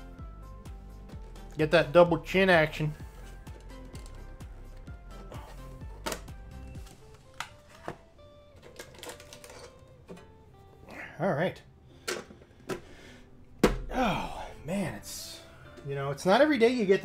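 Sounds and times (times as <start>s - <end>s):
quiet background music: 0.0s - 17.0s
cards and plastic packaging rustling: 1.1s - 10.8s.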